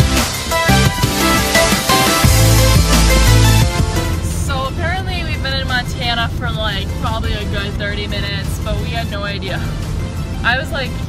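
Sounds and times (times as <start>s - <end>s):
car cabin rumble: 1.9s - 11.0s
woman talking: 4.2s - 9.8s, 10.4s - 11.0s.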